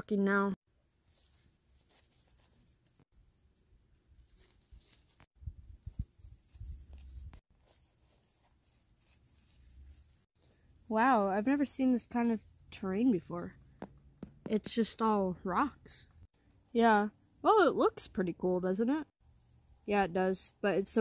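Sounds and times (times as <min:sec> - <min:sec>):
crackling of leaves and gravel: 0:00.9 - 0:03.1, 0:03.9 - 0:13.9.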